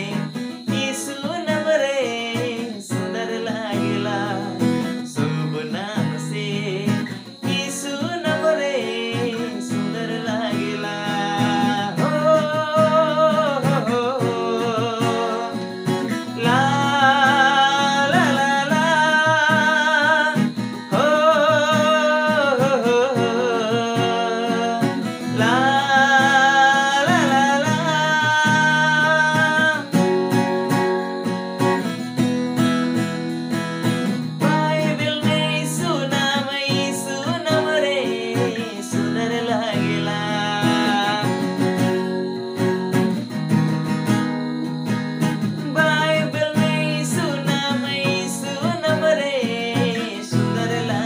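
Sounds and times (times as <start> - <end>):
man singing with vibrato: 0.0 - 51.0
strummed acoustic guitar: 0.0 - 51.0.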